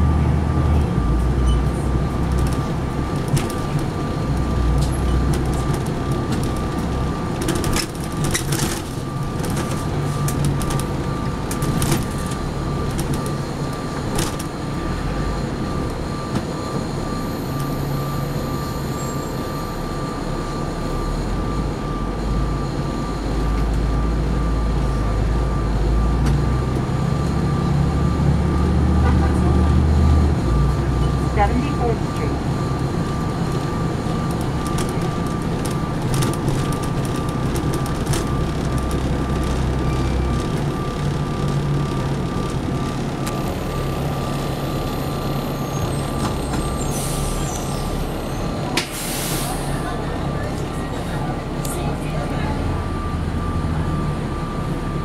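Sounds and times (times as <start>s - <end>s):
bus engine drone: 0.0s - 55.0s
road noise: 0.0s - 55.0s.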